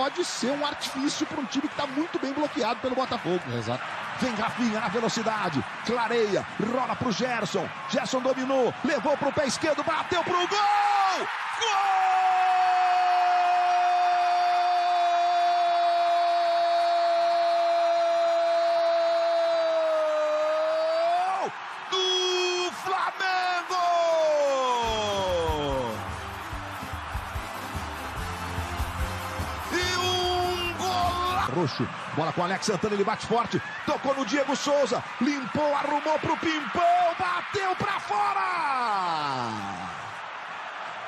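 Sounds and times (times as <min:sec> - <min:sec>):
commentator shouting goal: 0:20.3 - 0:26.1, 0:29.6 - 0:39.9.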